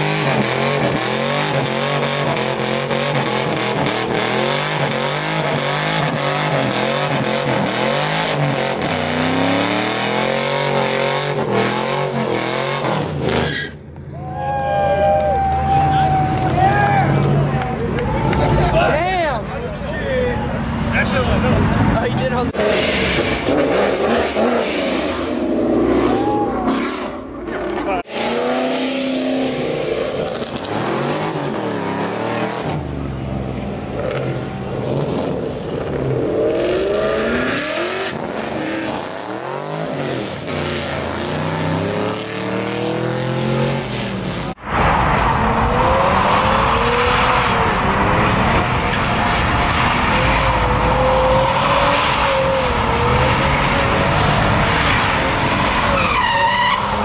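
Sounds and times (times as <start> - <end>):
engines revving: 0.0 - 13.9, 15.2 - 57.0
crowd voices: 14.1 - 24.6, 25.3 - 28.1.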